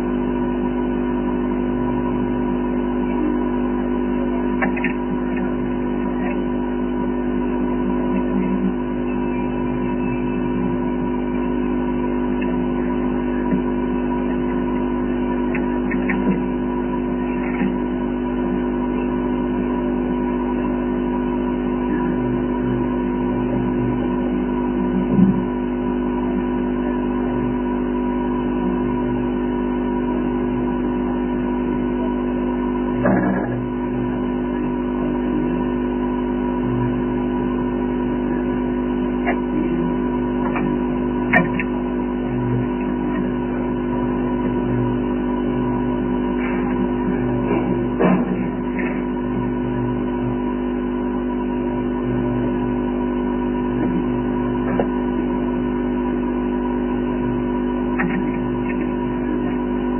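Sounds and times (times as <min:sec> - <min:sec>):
steady hum of held tones: 0:00.0 - 0:59.9.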